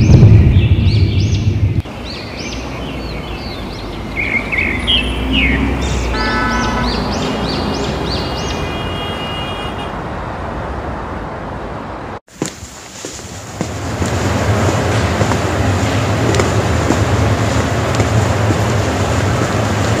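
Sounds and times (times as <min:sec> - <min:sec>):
city street traffic hum: 0:00.0 - 0:20.0
engine rumble: 0:12.6 - 0:20.0.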